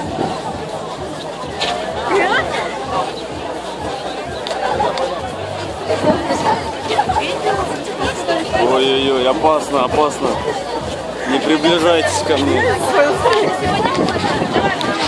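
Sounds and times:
hubbub of voices: 0:00.0 - 0:15.0
people talking and calling out: 0:00.0 - 0:15.0.

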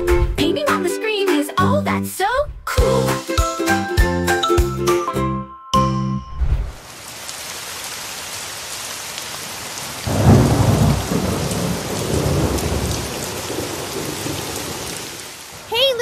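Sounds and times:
heavy rain: 0:06.7 - 0:16.0
thunder rumbling: 0:10.0 - 0:15.7.

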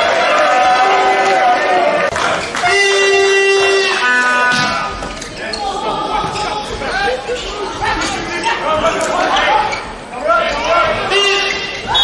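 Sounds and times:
crowd voices and chatter: 0:00.0 - 0:12.0.

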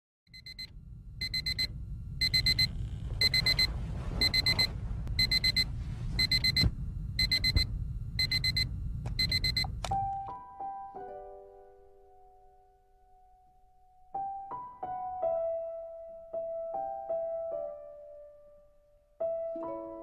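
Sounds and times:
mobile phone alarm beeping: 0:00.3 - 0:10.0
steady low rumble: 0:00.6 - 0:10.1.

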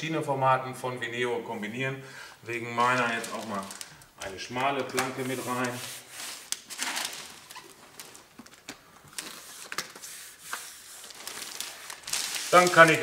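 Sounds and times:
hands rubbing vinyl plank: 0:05.1 - 0:06.6, 0:09.3 - 0:11.2.

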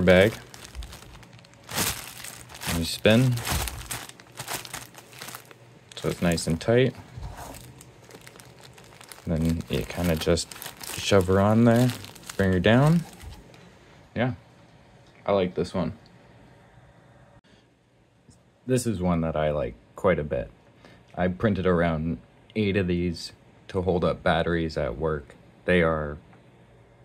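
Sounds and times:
plastic bag crinkling: 0:00.0 - 0:13.6.

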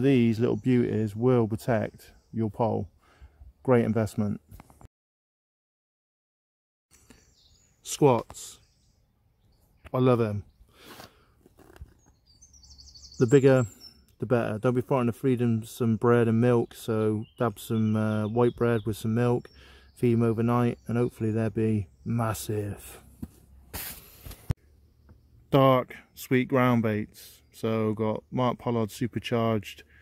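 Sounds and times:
bird chirping: 0:00.0 - 0:03.3, 0:06.9 - 0:23.1.

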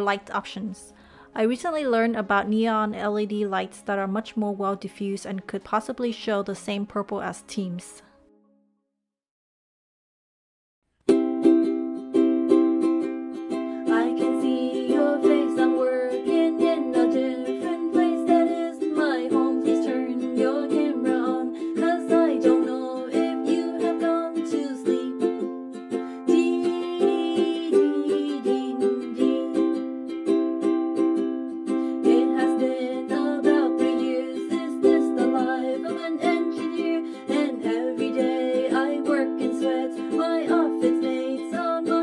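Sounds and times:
ukulele strumming: 0:11.0 - 0:42.0
person singing: 0:13.7 - 0:25.4, 0:26.0 - 0:29.9, 0:31.7 - 0:42.0.

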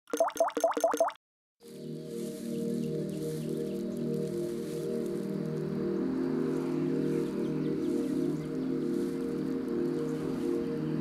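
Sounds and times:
soft music with held notes: 0:01.6 - 0:11.0.

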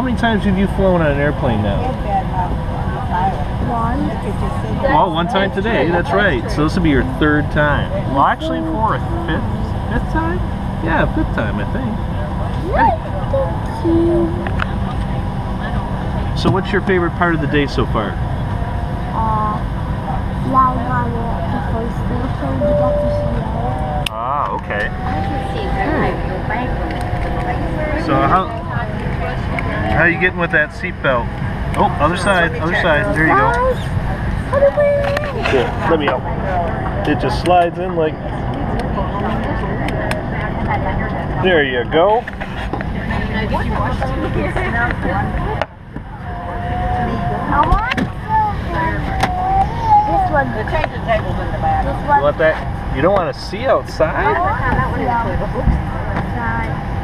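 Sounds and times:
airliner cabin rumble: 0:05.5 - 0:57.0
high voice vocalizing: 0:12.6 - 0:14.6, 0:48.4 - 0:50.3
quiet talking: 0:17.7 - 0:57.0.

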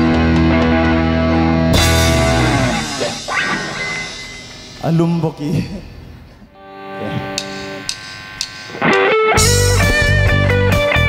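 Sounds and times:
live rock band playing: 0:00.0 - 0:04.8, 0:06.6 - 0:11.0
rising electric guitar note: 0:00.0 - 0:04.8, 0:06.6 - 0:11.0
cymbal crash: 0:01.8 - 0:05.0.

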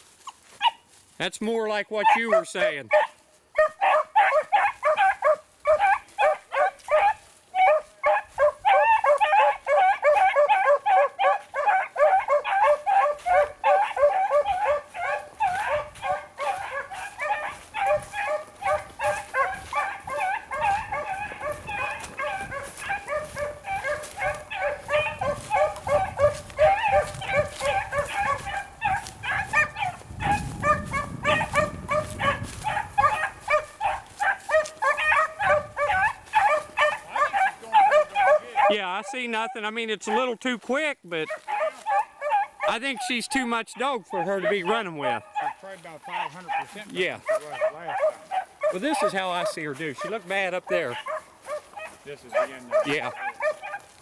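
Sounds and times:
dogs baying and yelping: 0:00.1 - 0:00.9, 0:02.0 - 0:40.3, 0:41.2 - 0:54.0.

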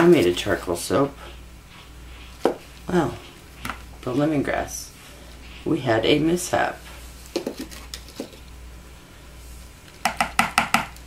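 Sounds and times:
blender knocking against bowl: 0:10.0 - 0:11.0.

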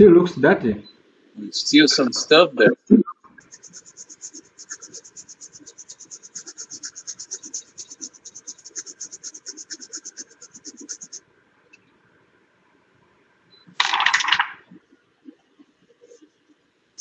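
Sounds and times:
scrubbing circuit board: 0:02.8 - 0:11.2.

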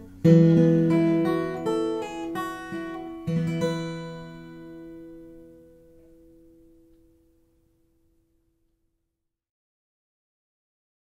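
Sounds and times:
acoustic guitar chord ringing: 0:00.0 - 0:08.7.

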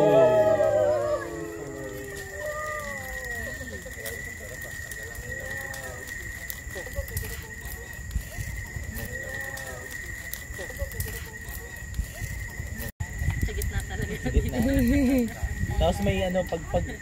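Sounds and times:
bonfire crackling: 0:00.0 - 0:17.0
people chattering: 0:00.0 - 0:17.0.

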